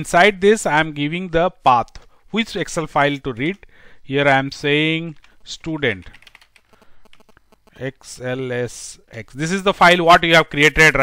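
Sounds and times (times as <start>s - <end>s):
person speaking: 0.0s - 11.0s
keyboard keys clicking: 5.2s - 7.3s.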